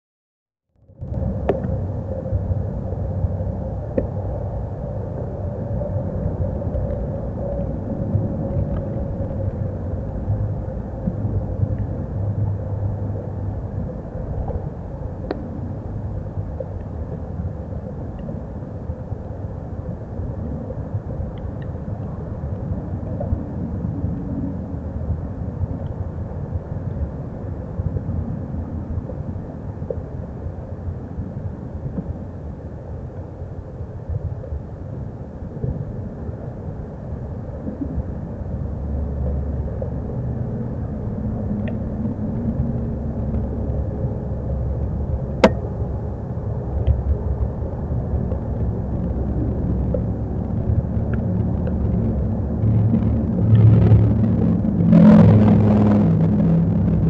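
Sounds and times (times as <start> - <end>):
low outdoor rumble: 0.7 - 57.0.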